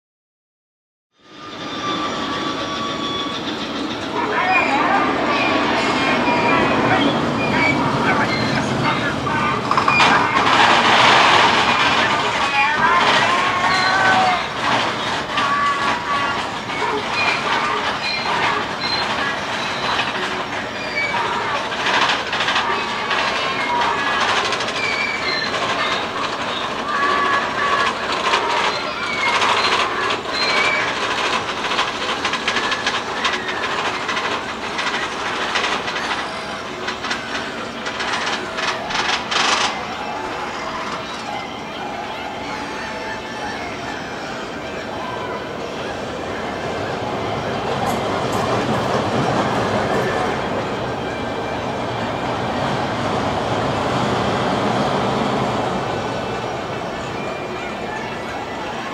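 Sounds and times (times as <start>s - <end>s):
roller coaster running on track: 1.2s - 58.9s
short high squeaks: 1.3s - 9.0s, 9.6s - 44.6s.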